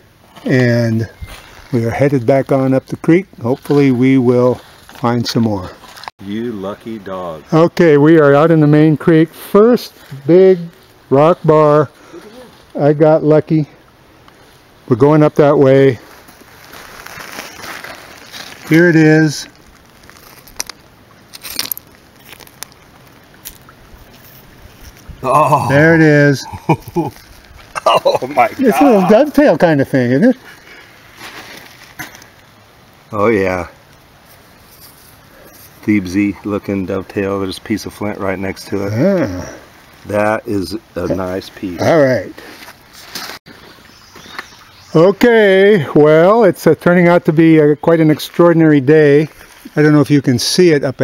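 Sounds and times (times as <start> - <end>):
creek background: 0.0 - 51.0
gravel and stones shifting: 0.5 - 6.2, 15.5 - 45.0
rustling noise: 1.1 - 2.1, 3.4 - 6.2, 15.9 - 25.2, 26.7 - 29.5, 30.4 - 32.6, 34.1 - 35.9, 42.3 - 44.6
high bird chirp: 43.5 - 45.2.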